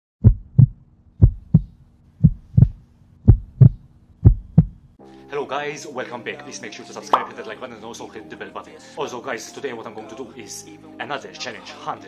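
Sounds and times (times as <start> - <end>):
heartbeat thumps: 0.2 - 4.9.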